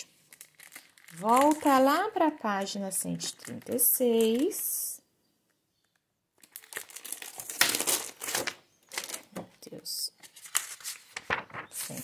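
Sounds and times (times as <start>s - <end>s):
pages rustling: 0.2s - 1.9s, 6.4s - 9.5s, 10.2s - 12.0s.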